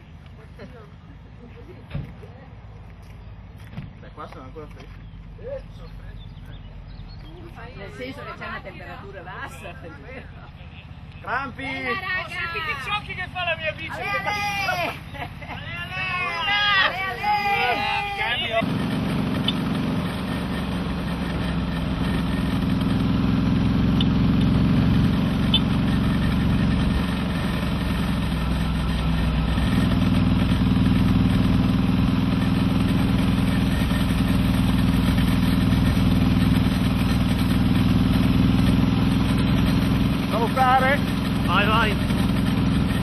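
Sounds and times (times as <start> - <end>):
vehicle engine humming: 0.0 - 43.0.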